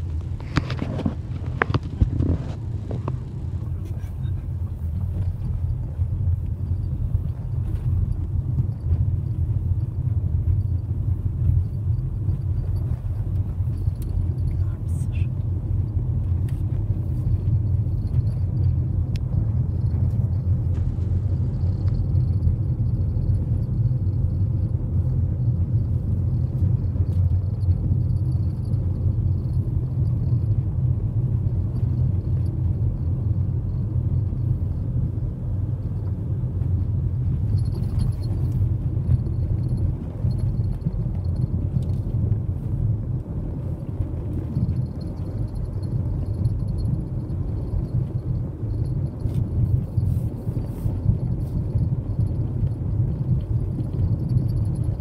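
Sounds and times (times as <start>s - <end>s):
car engine and tyre noise: 0.0s - 55.0s.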